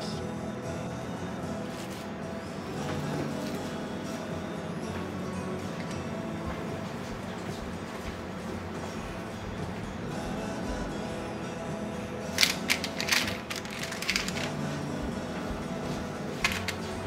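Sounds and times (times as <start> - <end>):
soft background music: 0.0 - 17.0
paper and plastic crinkling: 12.4 - 14.6.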